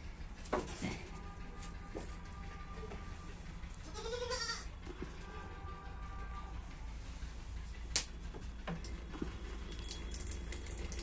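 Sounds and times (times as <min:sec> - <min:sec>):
goat bleating: 0:03.8 - 0:05.8.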